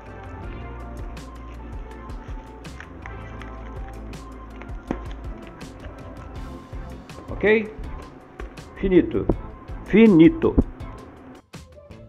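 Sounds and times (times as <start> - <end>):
background music: 0.0 - 12.0
bubble wrap crinkling: 1.2 - 8.8.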